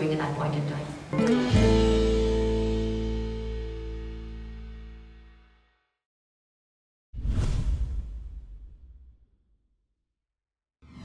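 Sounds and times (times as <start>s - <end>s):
whoosh: 7.2s - 9.4s.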